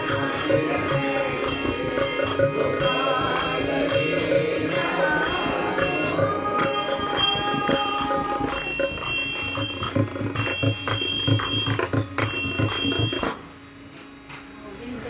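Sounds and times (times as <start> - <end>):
hand cymbals struck in rhythm: 0.0 - 13.5.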